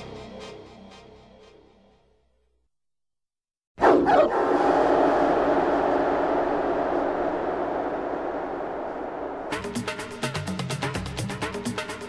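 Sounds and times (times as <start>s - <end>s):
dogs barking: 3.8s - 4.7s.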